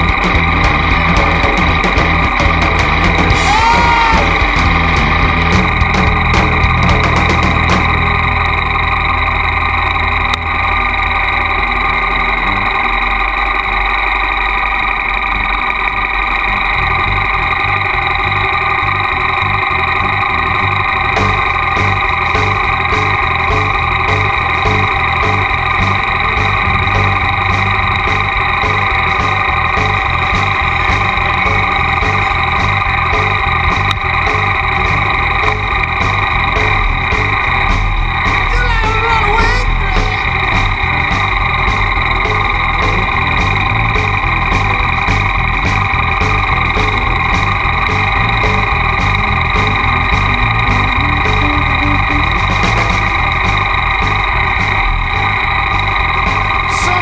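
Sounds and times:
motorcycle engine idling: 0.0 - 57.0.

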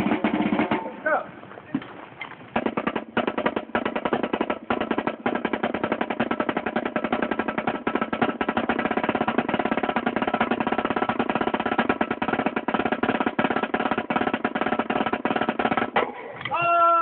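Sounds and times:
snare drum rolls: 0.0 - 1.3, 2.5 - 16.7.

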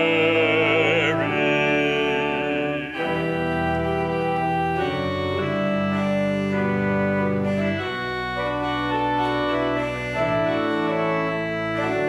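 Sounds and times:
church organ playing hymn chords: 0.0 - 12.0.

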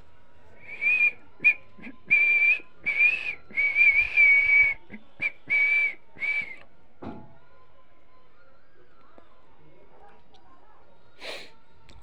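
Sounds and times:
person whistling: 0.7 - 6.6.

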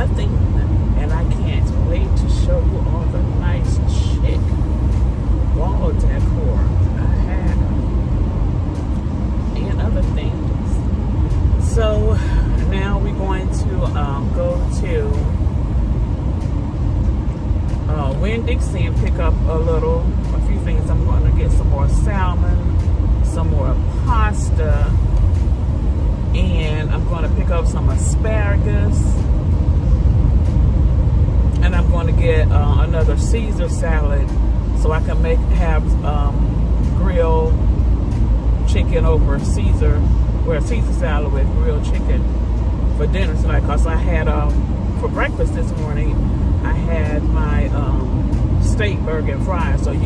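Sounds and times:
car cabin road rumble: 0.0 - 50.0.

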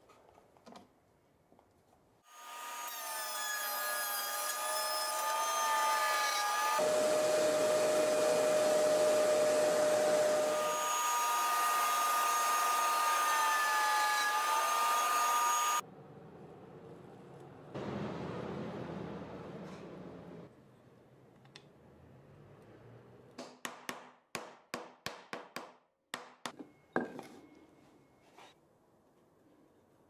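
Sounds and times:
router cutting plywood: 3.9 - 15.8
router whining: 5.2 - 15.8.

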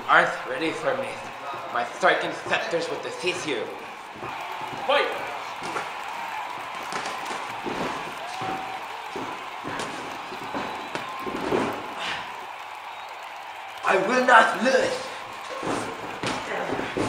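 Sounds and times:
body dropping onto ring floor: 6.8 - 11.9.

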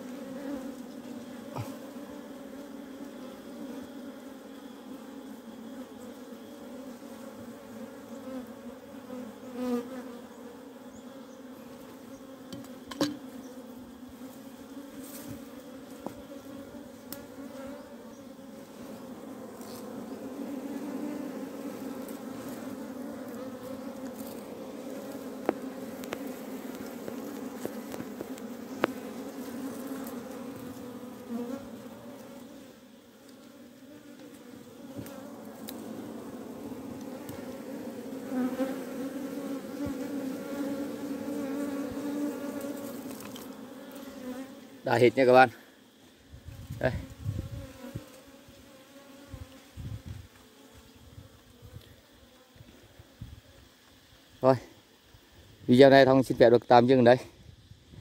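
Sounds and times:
honeybees buzzing: 0.0 - 53.8.

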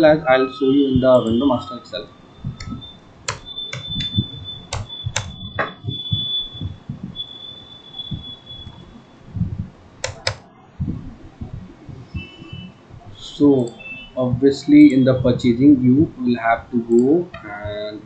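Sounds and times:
faint high steady tone: 0.0 - 18.0
low thumps: 1.0 - 7.3, 7.9 - 13.2
keyboard and mouse clicks: 2.6 - 7.0, 10.0 - 10.4.

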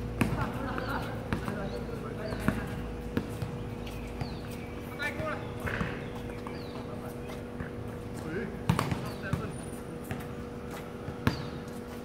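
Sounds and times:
players calling: 0.0 - 12.0
basketball bouncing on hard court: 0.2 - 4.5, 5.2 - 6.8, 7.5 - 10.4, 11.0 - 11.8.

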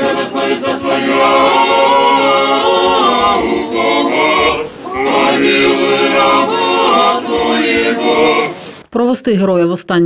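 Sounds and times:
voices singing a cappella chant: 0.0 - 8.8.

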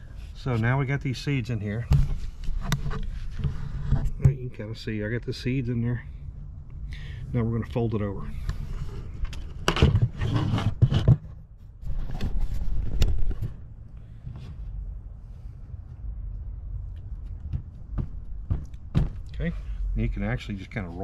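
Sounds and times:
steady low rumble: 0.0 - 9.7, 11.4 - 21.0.

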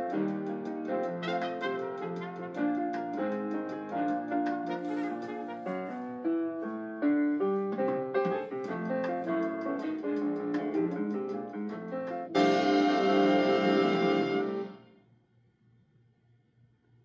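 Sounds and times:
piano notes and chords: 0.0 - 14.9.

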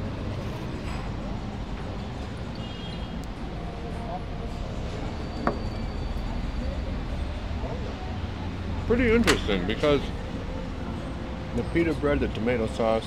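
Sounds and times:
low traffic rumble: 0.0 - 13.0.

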